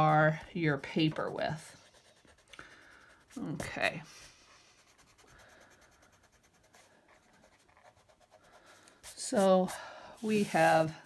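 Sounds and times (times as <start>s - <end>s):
pencil on paper: 0.1s - 11.0s.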